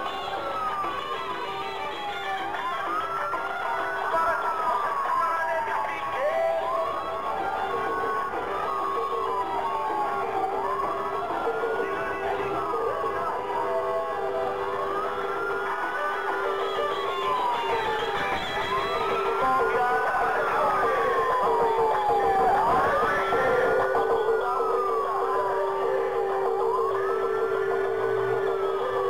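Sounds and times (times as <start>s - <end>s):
music: 0.0s - 29.0s
police siren wailing: 0.0s - 29.0s.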